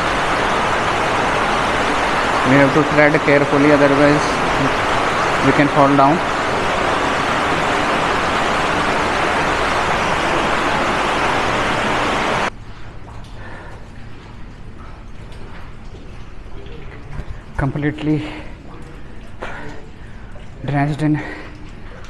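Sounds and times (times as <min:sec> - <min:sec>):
loud steady rushing noise: 0:00.0 - 0:12.5.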